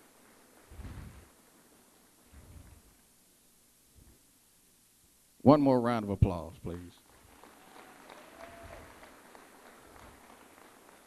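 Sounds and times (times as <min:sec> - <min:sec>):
faint audience applause: 0:07.0 - 0:11.0.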